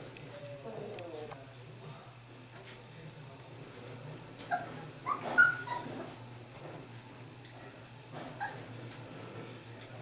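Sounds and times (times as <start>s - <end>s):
puppies yipping and whimpering: 4.5s - 6.1s, 8.3s - 8.7s.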